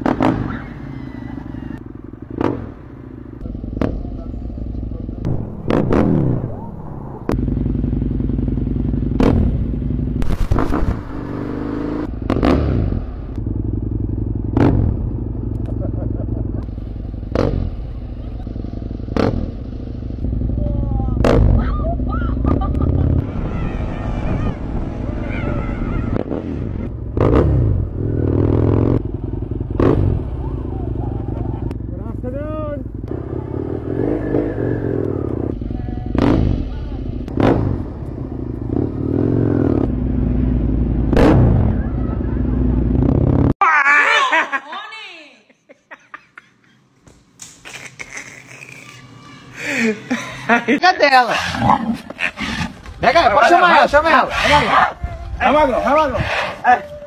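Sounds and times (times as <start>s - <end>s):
motorcycle engine running: 0.0s - 43.6s.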